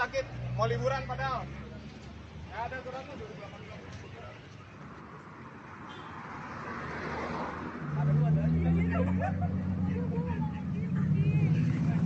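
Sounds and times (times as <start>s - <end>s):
people chattering: 0.0s - 5.6s, 7.7s - 12.0s.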